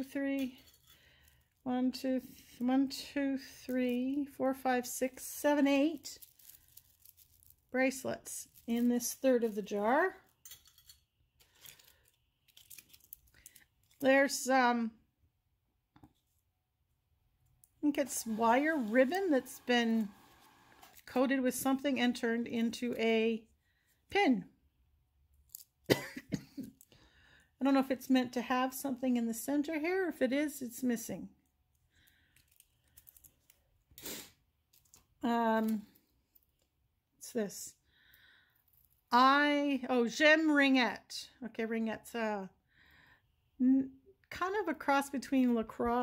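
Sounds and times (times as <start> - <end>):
faint crinkling: 5.7 - 10.5, 11.3 - 14.2, 31.7 - 34.0.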